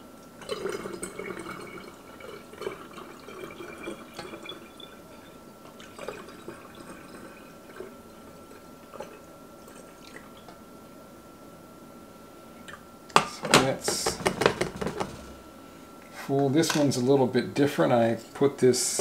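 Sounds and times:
faint high whine: 0.0s - 19.0s
liquid dripping: 0.2s - 10.6s
liquid trickling through a funnel: 0.4s - 10.6s.

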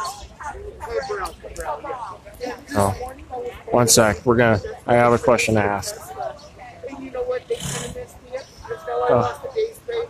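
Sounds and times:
faint indistinct speech: 0.0s - 10.0s.

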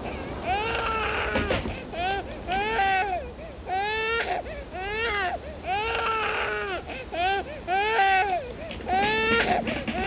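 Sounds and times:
infant crying: 0.0s - 10.0s.

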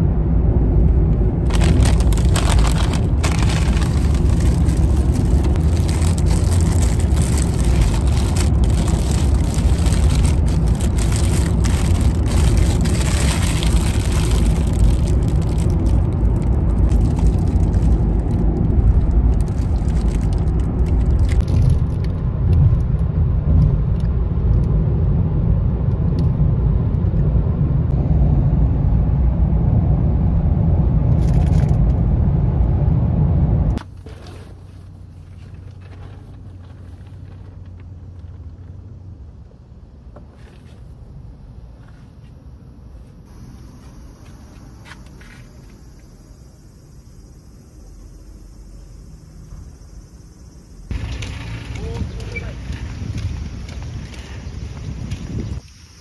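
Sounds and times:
low road rumble: 0.0s - 56.0s
paper bag crackling: 1.4s - 22.0s.

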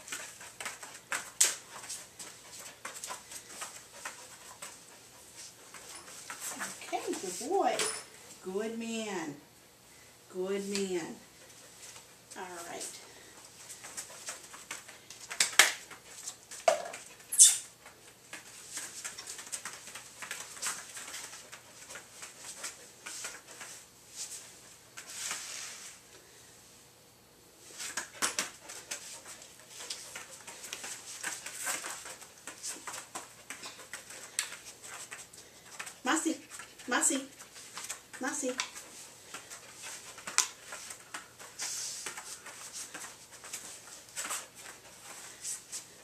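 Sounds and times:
dog and handler moving on foam mats: 0.0s - 9.3s, 10.3s - 26.1s, 27.6s - 46.0s.

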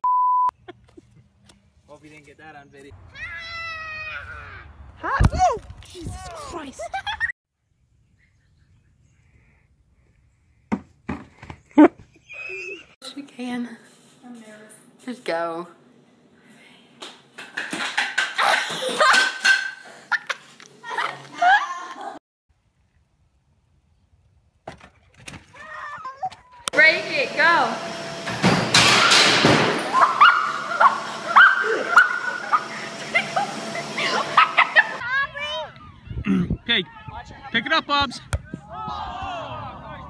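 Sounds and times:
treadmill motor whine: 26.8s - 35.0s
loud clattering crash: 28.3s - 30.0s.

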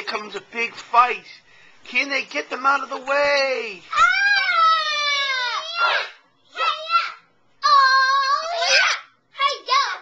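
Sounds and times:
child squealing and crying: 3.9s - 9.1s.

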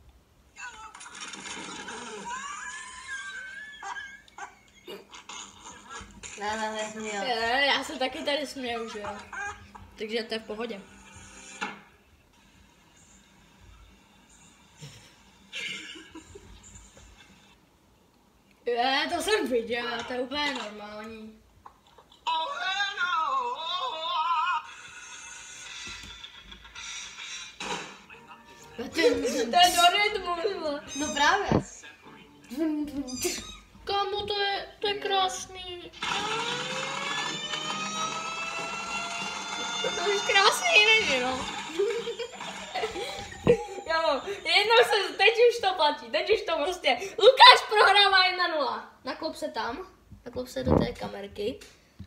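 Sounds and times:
high wavering laugh-like cry: 1.8s - 6.1s, 41.6s - 44.7s.

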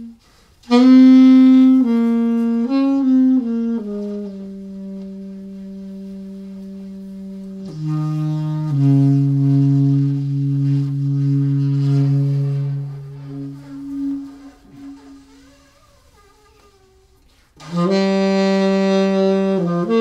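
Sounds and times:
alto saxophone sustained notes: 0.0s - 20.0s.

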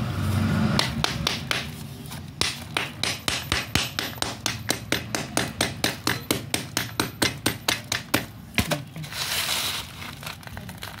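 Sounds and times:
hammer pounding slate on plastic: 0.8s - 8.8s.

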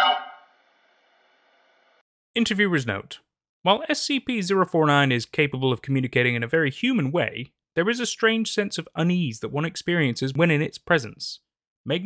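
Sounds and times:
man speaking theatrically: 2.4s - 12.0s.

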